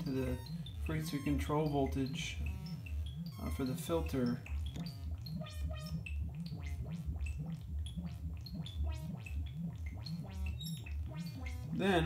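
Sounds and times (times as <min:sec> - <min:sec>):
random synth bleeps and chirps: 0:00.0 - 0:12.0
wobbling synth bass tone: 0:00.0 - 0:12.0.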